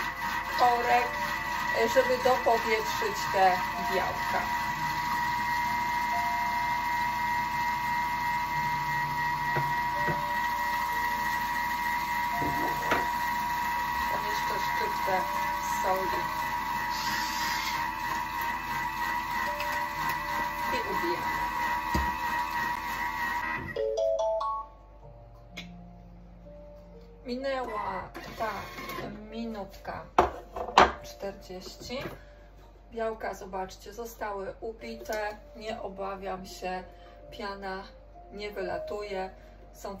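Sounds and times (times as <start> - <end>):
grinder turning: 0.0 - 23.7
kitchen machine motor humming: 0.0 - 23.8, 27.5 - 32.3.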